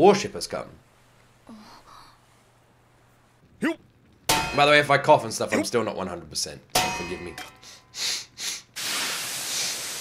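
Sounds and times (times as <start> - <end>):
rushing hiss: 8.0 - 10.0.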